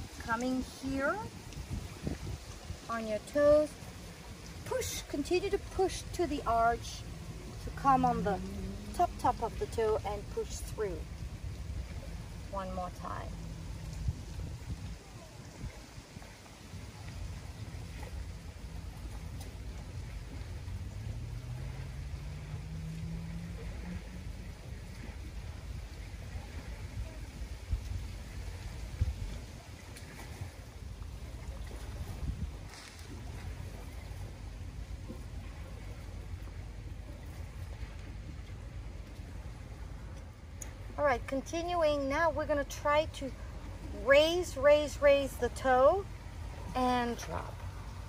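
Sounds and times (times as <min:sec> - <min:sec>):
low outdoor rumble: 0:00.0 - 0:48.0
motorboat engine: 0:00.0 - 0:48.0.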